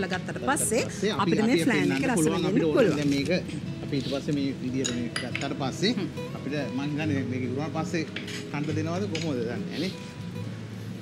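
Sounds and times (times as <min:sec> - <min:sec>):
light background music: 0:00.0 - 0:11.0
utensil clinking against bowl: 0:04.8 - 0:05.7.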